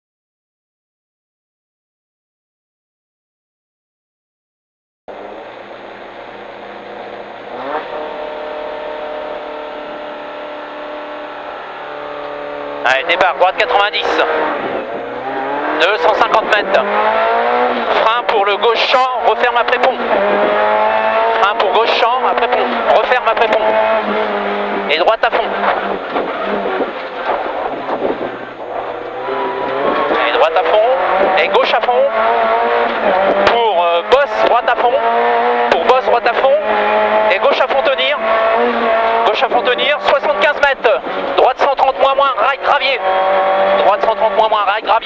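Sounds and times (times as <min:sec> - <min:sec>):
car engine revving: 0:05.1 - 0:45.0
tyre and road noise: 0:05.1 - 0:45.0.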